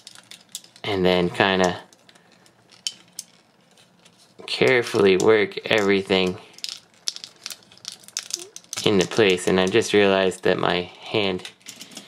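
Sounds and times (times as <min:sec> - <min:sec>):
plastic parts clicking: 0:00.0 - 0:00.9, 0:01.6 - 0:09.8.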